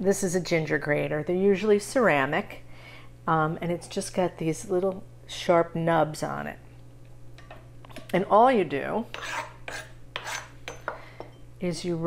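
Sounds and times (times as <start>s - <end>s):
knife scraping on cutting board: 9.1s - 10.9s.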